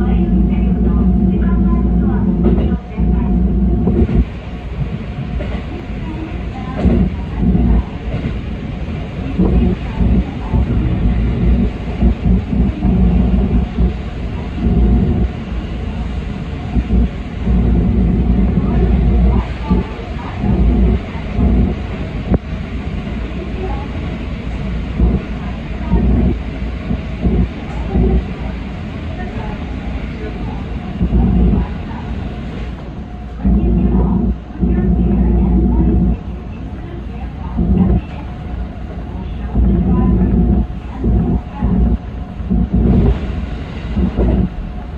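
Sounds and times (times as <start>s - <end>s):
train wheels rumbling on rail: 0.0s - 44.9s.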